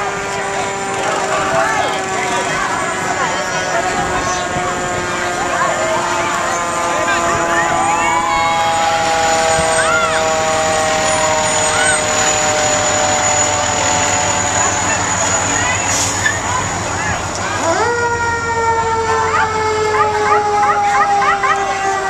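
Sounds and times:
fire engine held horn tones: 0.0s - 16.5s, 17.6s - 22.0s
siren gliding up: 0.0s - 16.8s, 17.4s - 22.0s
crowd voices and shouts: 0.0s - 22.0s.

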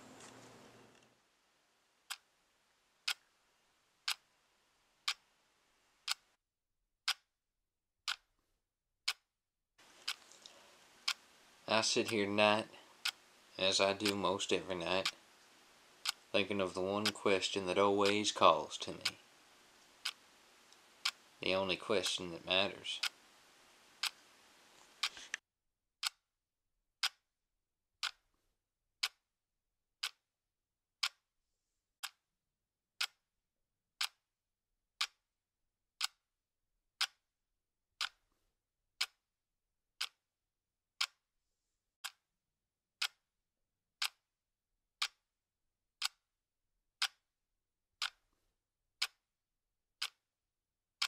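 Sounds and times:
clock ticking: 2.1s - 2.3s, 3.0s - 3.3s, 4.0s - 4.3s, 5.0s - 5.2s, 6.0s - 6.3s, 7.1s - 7.3s, 8.1s - 8.3s, 9.0s - 9.2s, 10.0s - 19.3s, 19.9s - 23.2s, 24.0s - 24.2s, 27.0s - 27.2s, 28.0s - 28.2s, 29.0s - 29.2s, 30.0s - 30.2s, 31.0s - 31.2s, 32.0s - 32.2s, 33.0s - 33.2s, 34.0s - 34.2s, 35.0s - 35.2s, 36.0s - 36.2s, 37.0s - 37.2s, 38.0s - 38.2s, 42.0s - 42.2s, 43.0s - 43.2s, 44.0s - 44.2s, 45.0s - 45.2s, 47.0s - 47.2s, 50.0s - 50.2s
sharp ticks: 3.0s - 3.2s, 5.0s - 5.2s, 13.0s - 13.2s, 13.9s - 14.3s, 15.0s - 15.2s, 16.0s - 16.4s, 17.0s - 19.2s, 20.0s - 21.2s, 24.0s - 24.2s.

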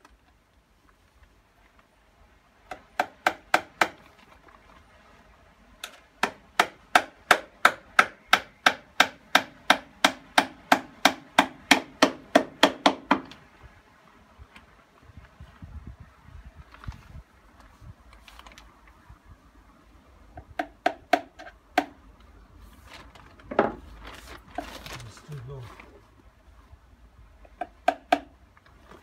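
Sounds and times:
hammer striking timber: 2.7s - 4.0s, 6.2s - 13.3s, 20.4s - 22.0s, 27.6s - 28.3s
soft knocks and wood handling: 20.4s - 26.2s.

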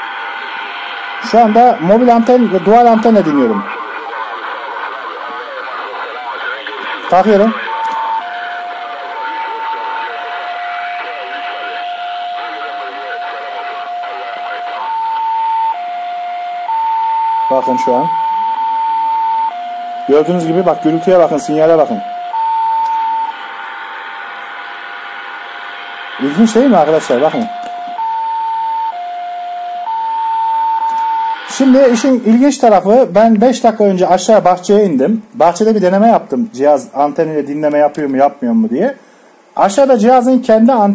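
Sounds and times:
interference whistle: 0.0s - 33.1s
radio band hiss: 0.0s - 40.9s
thin speech over radio: 1.3s - 14.9s.

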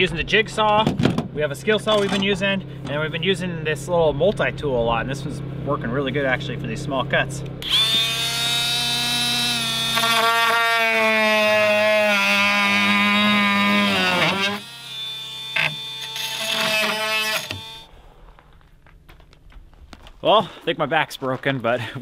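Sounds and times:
oscillating multi-tool cutting wood: 7.6s - 17.9s.

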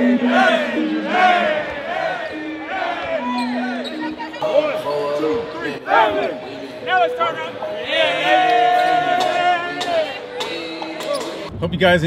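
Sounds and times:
men talking and calling out: 0.0s - 11.5s
crowd noise: 0.0s - 11.8s.

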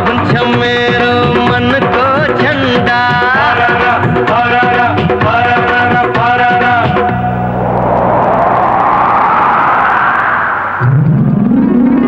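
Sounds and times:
rising whooshing synth sweep: 7.2s - 11.8s.

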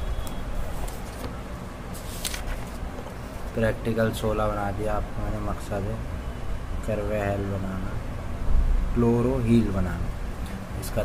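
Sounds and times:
book pages turning: 0.1s - 3.6s.

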